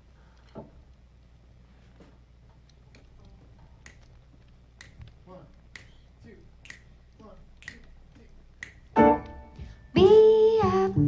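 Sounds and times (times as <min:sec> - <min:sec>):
faint low hum: 0:00.0 - 0:11.0
finger snaps: 0:03.8 - 0:04.2, 0:04.8 - 0:08.0, 0:08.6 - 0:09.8.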